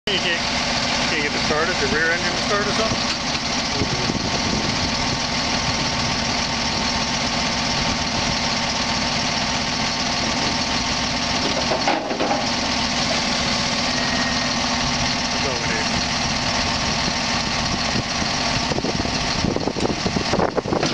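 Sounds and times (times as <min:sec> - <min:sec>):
diesel truck engine running: 0:00.1 - 0:20.9.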